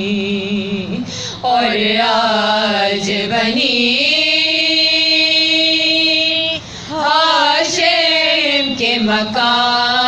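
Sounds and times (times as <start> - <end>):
women singing unaccompanied lament: 0.0 - 10.0.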